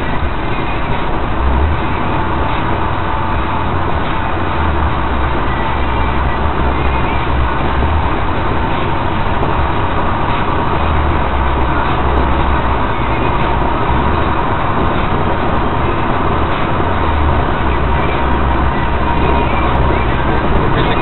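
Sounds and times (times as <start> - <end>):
car road and engine noise: 0.0 - 21.0.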